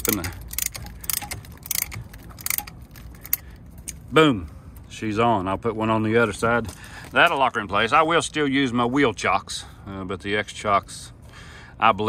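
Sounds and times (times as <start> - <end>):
ratchet wrench clicking: 0.0 - 3.4.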